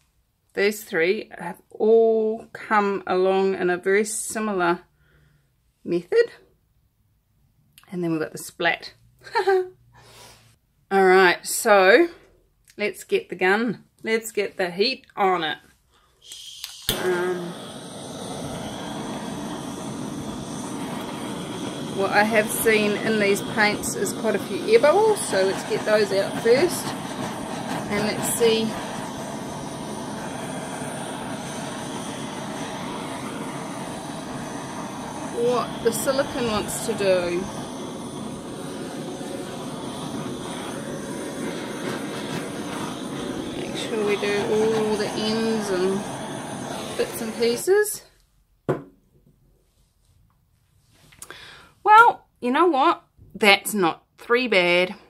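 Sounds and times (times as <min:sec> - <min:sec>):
heat gun fan blowing air: 0:16.3 - 0:48.0.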